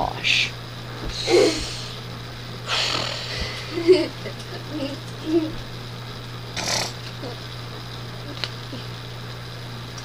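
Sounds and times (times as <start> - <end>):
steady low hum: 0.0 - 10.0
breathy hissy exhale: 1.1 - 2.0, 2.6 - 3.7.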